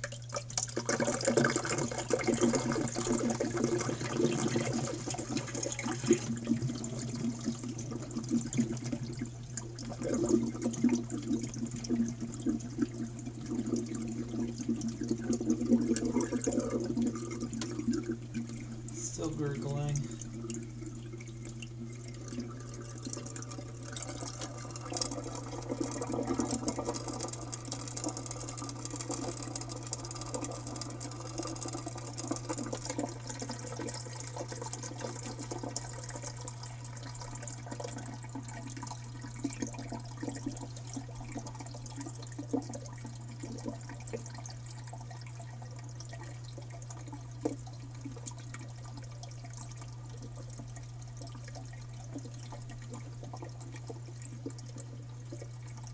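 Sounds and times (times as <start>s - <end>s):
water gurgling and trickling: 0.0s - 55.9s
steady low hum: 1.8s - 27.8s.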